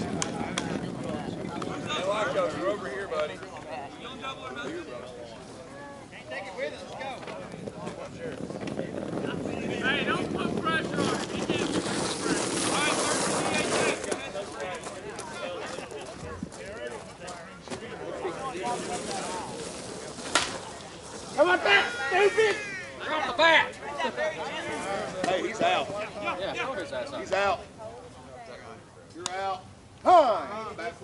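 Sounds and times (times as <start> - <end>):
people shouting: 21.4 - 23.4
people calling out: 21.4 - 24.5.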